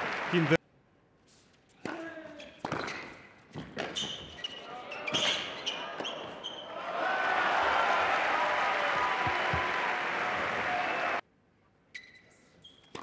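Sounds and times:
crowd applauding and cheering: 0.0 - 0.6, 6.8 - 11.2
shoe squeaks on court: 2.3 - 6.7, 11.9 - 13.0.

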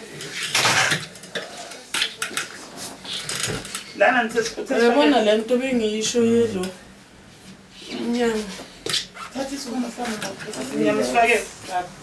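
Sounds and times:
household objects clattering: 0.2 - 3.8.

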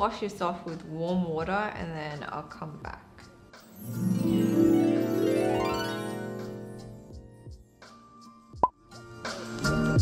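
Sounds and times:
background music with steady beat: 0.0 - 10.0.

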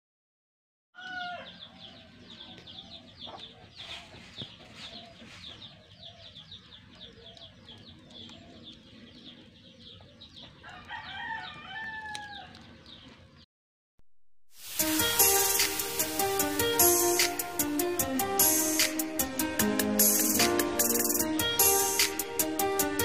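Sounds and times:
rooster crowing: 1.0 - 3.0, 10.6 - 12.6
chickens clucking: 1.0 - 13.4
high chirping: 14.6 - 19.1
sharp pops: 15.1 - 16.2.

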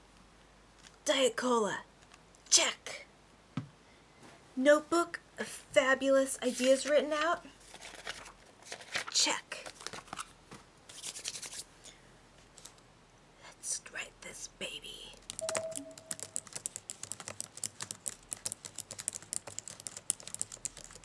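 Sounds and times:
fast typing on keyboard: 15.1 - 21.0.

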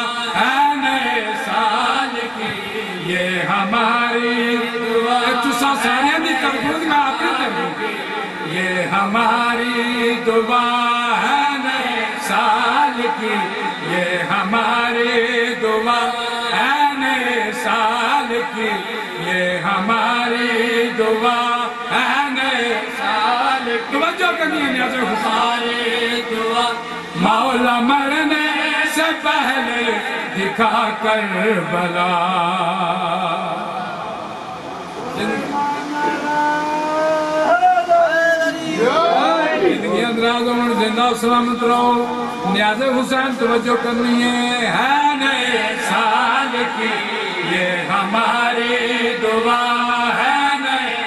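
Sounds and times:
man chanting into a microphone: 0.0 - 51.0.

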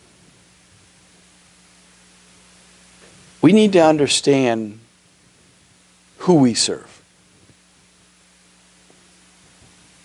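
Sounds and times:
low constant hum: 0.0 - 10.0
steady hiss: 0.0 - 10.0.

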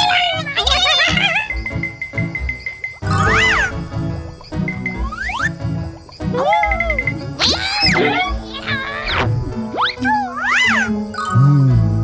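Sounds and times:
background music: 0.0 - 12.0
high cartoon character cry: 6.4 - 9.1.

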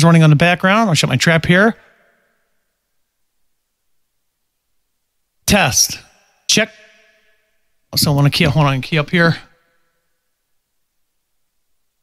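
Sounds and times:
person's voice: 5.4 - 6.9, 7.9 - 9.5.

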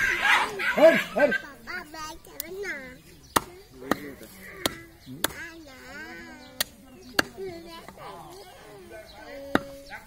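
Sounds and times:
cleaver chopping meat on wood: 3.3 - 5.5.

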